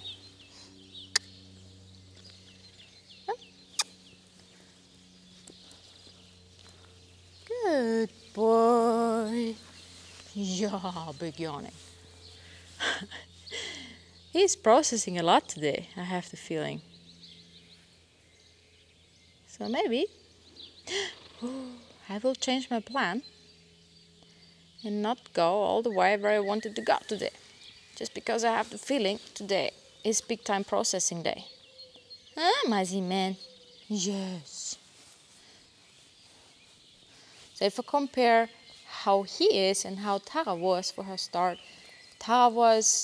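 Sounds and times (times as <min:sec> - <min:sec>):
small birds chirping: 0:00.0 - 0:43.0
steady low hum: 0:00.0 - 0:43.0.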